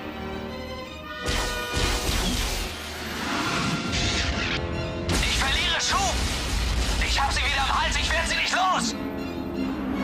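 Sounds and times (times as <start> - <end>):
background score music: 0.0 - 10.0.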